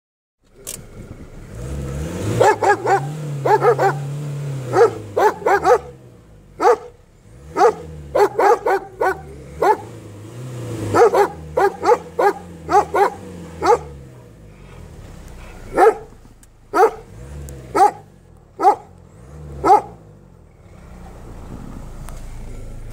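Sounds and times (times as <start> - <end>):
dogs barking: 2.3 - 6.0, 6.6 - 10.0, 10.8 - 14.4, 15.4 - 17.1, 17.7 - 20.1.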